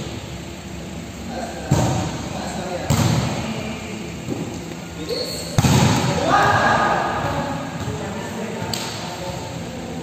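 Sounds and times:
volleyball hit in gym hall: 0:01.3 - 0:09.6
player shouting: 0:06.2 - 0:07.2.

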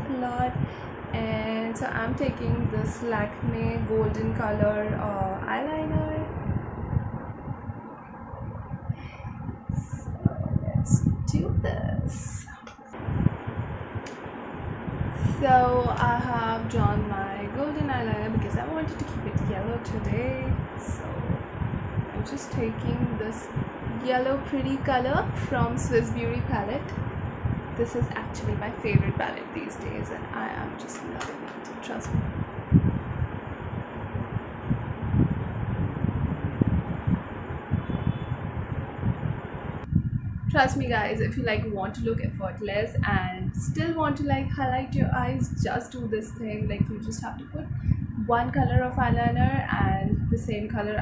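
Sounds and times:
fan air buffeting microphone: 0:00.0 - 0:51.0.

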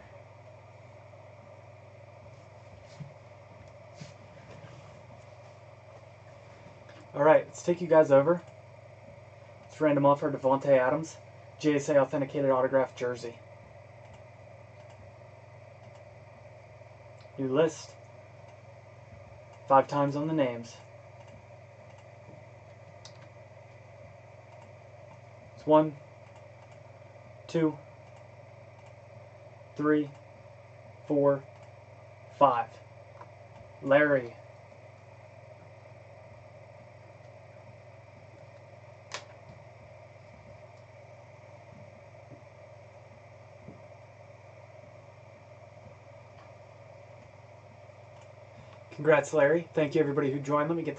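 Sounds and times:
low electrical hum: 0:00.0 - 0:50.9
computer mouse click: 0:21.2 - 0:22.1
sharp click: 0:39.1 - 0:39.5.

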